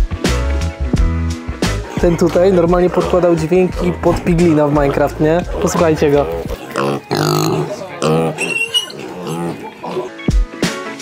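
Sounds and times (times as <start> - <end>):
pig making short pitched calls: 4.9 - 10.2.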